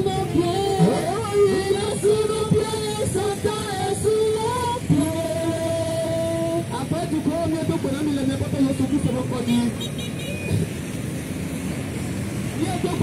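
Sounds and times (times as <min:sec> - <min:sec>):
voice through loudspeaker: 0:00.0 - 0:09.9, 0:12.6 - 0:13.0
street traffic noise: 0:00.0 - 0:13.0.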